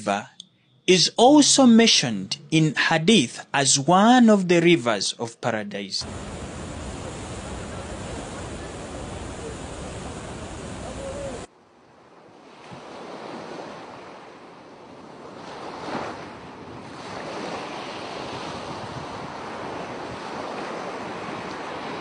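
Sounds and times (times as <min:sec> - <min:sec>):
water rushing: 0:06.0 - 0:11.5.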